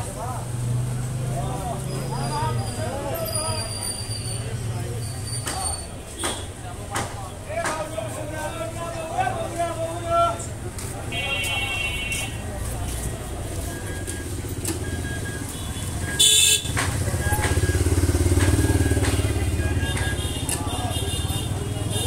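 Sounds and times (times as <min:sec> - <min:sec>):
vehicle engine rumble: 0:00.0 - 0:22.0.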